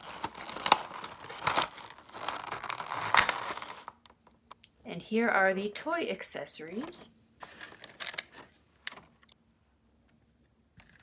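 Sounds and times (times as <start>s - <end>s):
plastic tray crinkling: 0.0s - 4.1s, 6.8s - 9.2s.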